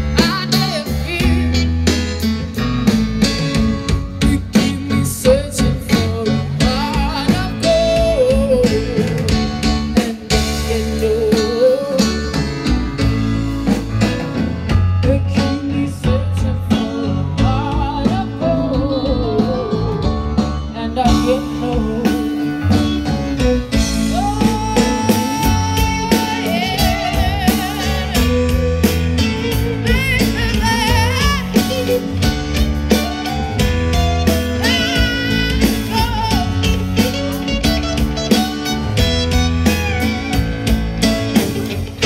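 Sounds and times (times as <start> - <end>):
woman singing: 0.0 - 1.8, 4.2 - 12.5, 15.0 - 23.0, 23.8 - 33.2, 34.3 - 37.5
live band playing: 0.0 - 42.0.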